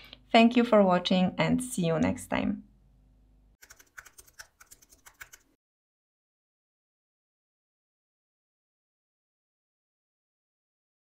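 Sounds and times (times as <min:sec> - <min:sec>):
keyboard typing clicks: 0:03.6 - 0:05.5.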